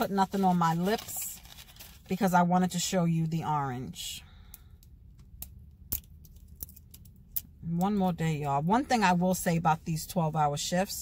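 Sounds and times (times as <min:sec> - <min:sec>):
packaging handling noises: 0:00.0 - 0:02.1.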